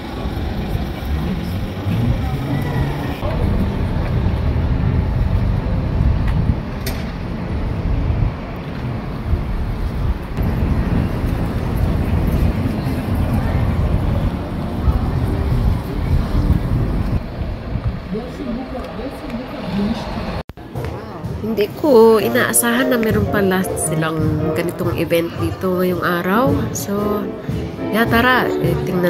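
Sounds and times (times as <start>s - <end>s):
wind buffeting microphone: 0.0s - 20.4s
busy pedestrian street bustle: 0.0s - 29.0s.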